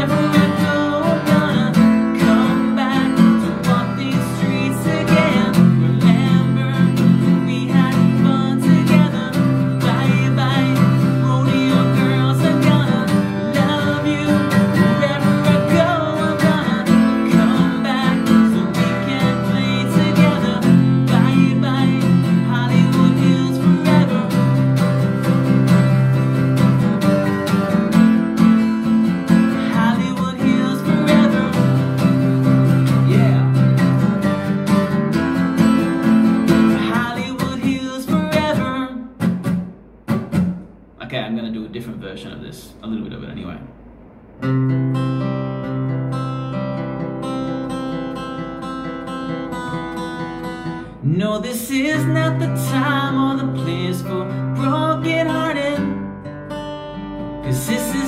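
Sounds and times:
acoustic guitar strumming chords: 0:00.0 - 0:58.0.

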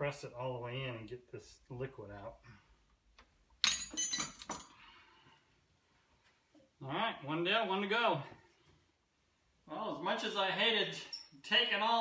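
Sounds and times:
metal clinks and clatter: 0:03.6 - 0:04.8.

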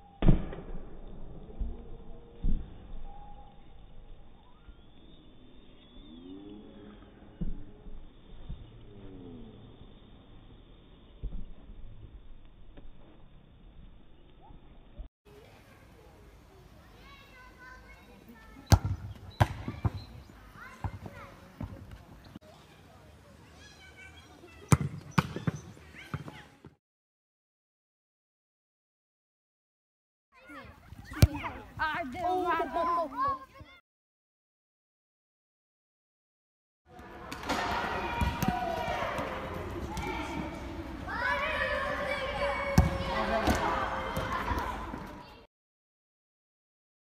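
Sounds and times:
football kicked and bouncing: 0:18.7 - 0:20.1, 0:24.7 - 0:26.4, 0:31.1 - 0:32.0
children calling out: 0:37.4 - 0:45.5.

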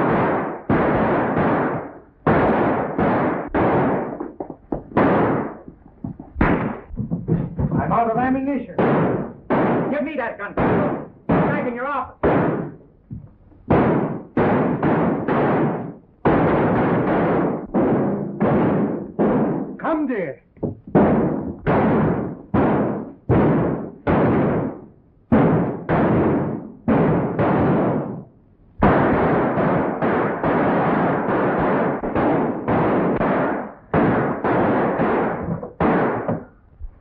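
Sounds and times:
fight blows and thuds: 0:00.0 - 0:37.0.

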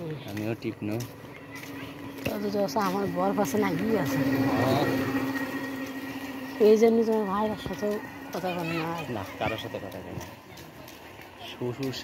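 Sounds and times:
people speaking and calling out: 0:00.0 - 0:12.0
steady low hum: 0:00.5 - 0:11.4.

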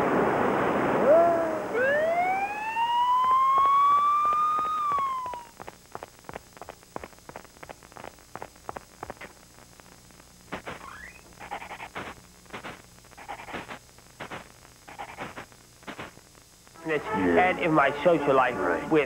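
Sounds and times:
whistle-like rising and falling tone: 0:01.7 - 0:05.6.

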